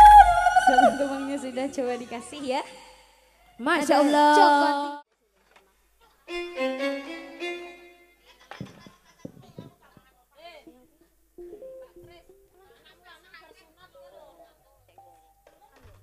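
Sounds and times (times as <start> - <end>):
stage band music: 6.3 - 8.1.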